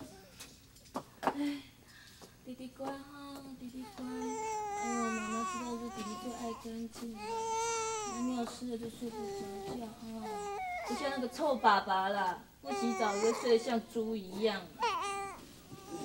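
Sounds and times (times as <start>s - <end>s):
baby crying: 3.8s - 6.6s, 7.2s - 8.4s, 9.1s - 11.8s, 12.6s - 16.0s.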